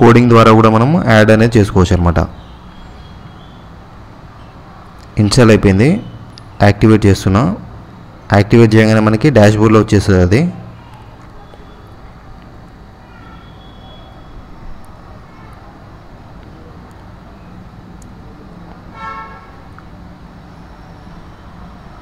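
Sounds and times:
distant road traffic: 0.0 - 22.0
vehicle horn toot: 18.9 - 19.6.

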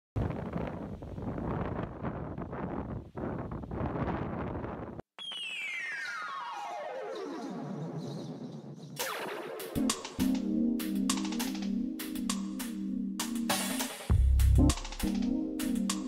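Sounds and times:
wind rushing on microphone: 0.2 - 5.0
synthesizer sweep: 5.2 - 16.0.

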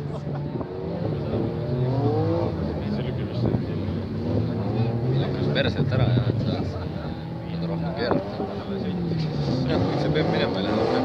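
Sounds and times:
car engines revving: 0.0 - 11.0.

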